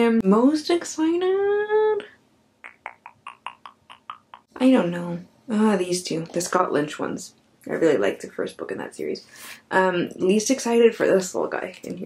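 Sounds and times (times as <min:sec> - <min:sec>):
tongue clicks: 0:02.0 - 0:04.5.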